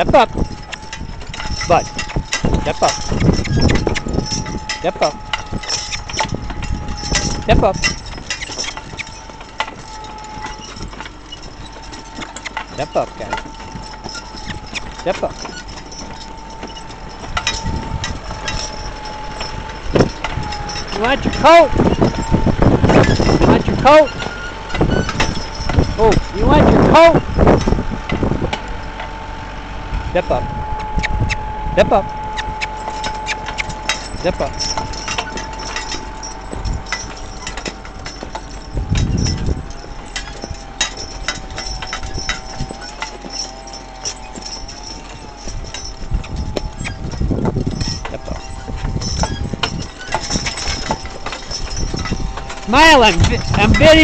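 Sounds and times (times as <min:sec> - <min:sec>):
harness chains jingling: 0:00.0 - 0:54.0
tractor engine running: 0:00.0 - 0:54.0.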